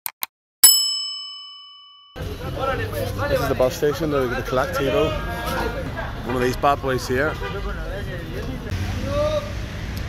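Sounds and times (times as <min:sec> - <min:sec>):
bell ding: 0:00.6 - 0:02.2.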